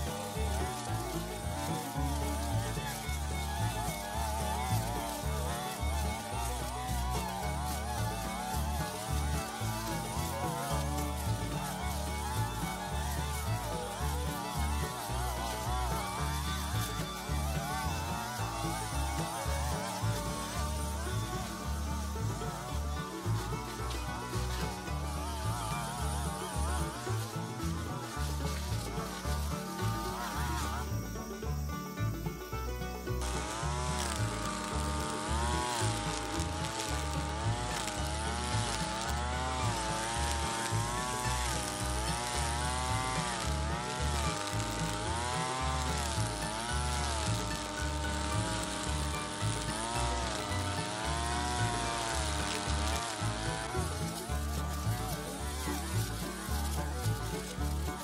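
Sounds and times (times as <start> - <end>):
background music: 0.0 - 58.0
brush cutter engine cutting grass: 0.0 - 58.0.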